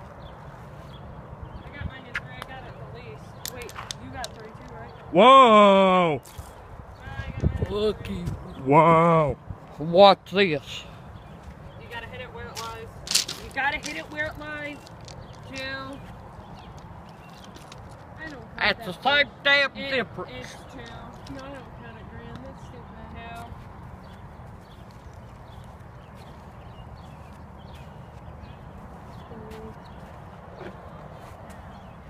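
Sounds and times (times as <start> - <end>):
ball clicking on loose gravel: 12.6 - 16.0, 16.6 - 18.4.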